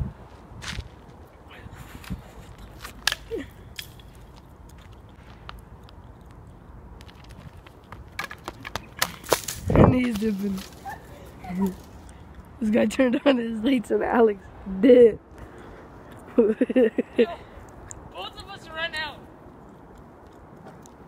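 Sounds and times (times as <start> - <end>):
wind rumble on microphone: 0.0 - 2.7, 9.4 - 10.6
footsteps on gravelly road: 0.2 - 1.3, 3.8 - 12.2
person laughing: 1.8 - 3.6, 16.3 - 17.5.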